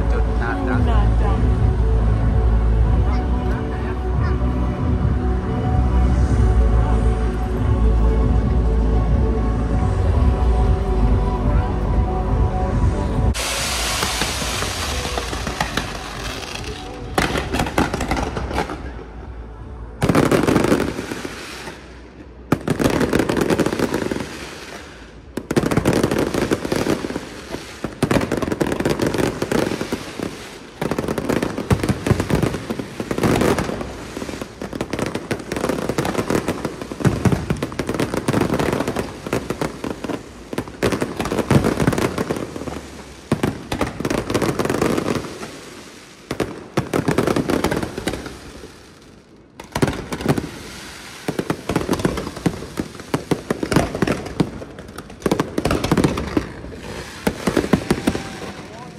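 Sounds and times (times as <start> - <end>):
fireworks bangs and crackling: 0.0 - 58.9.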